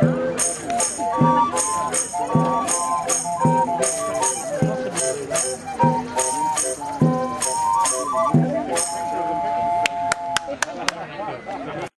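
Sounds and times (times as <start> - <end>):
street organ chord: 0.0 - 9.8.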